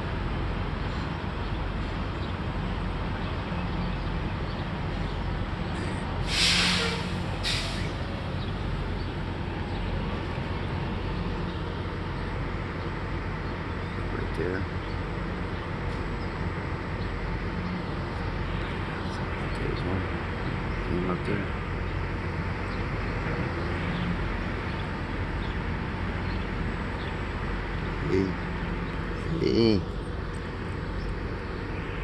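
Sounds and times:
loud hiss: 0:06.2 - 0:08.0.

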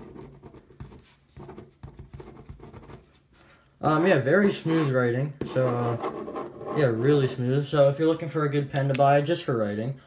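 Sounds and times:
pen scratching on paper: 0:00.0 - 0:03.2, 0:04.4 - 0:07.3.

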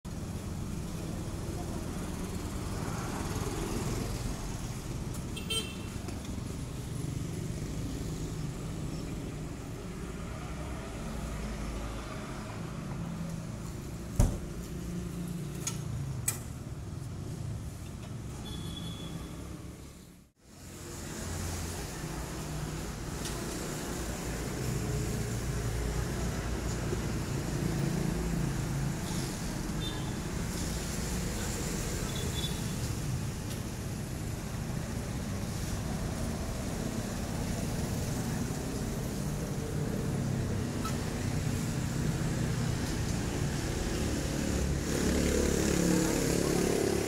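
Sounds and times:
traffic rumble: 0:00.1 - 0:47.0.

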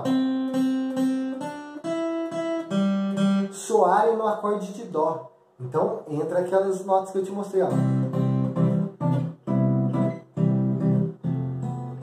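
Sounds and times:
acoustic guitar chords: 0:00.0 - 0:06.0, 0:07.6 - 0:12.0.

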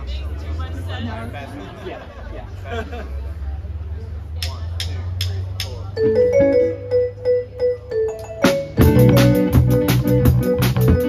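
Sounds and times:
keyboard intro: 0:06.0 - 0:11.0.

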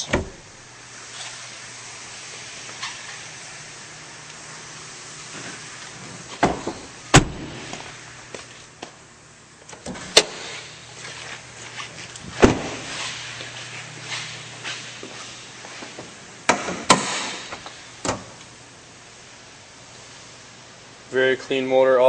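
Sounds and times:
steady low hum: 0:00.0 - 0:22.0.

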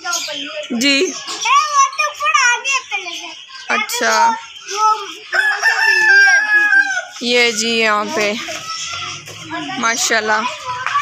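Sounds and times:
rooster crowing: 0:05.3 - 0:07.3.

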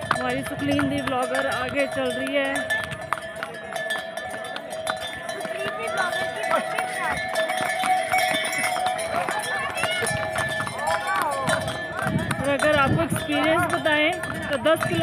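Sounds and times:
harness bells ringing: 0:00.0 - 0:15.0
hooves clicking on stone: 0:00.0 - 0:15.0
people's voices: 0:00.1 - 0:15.0.

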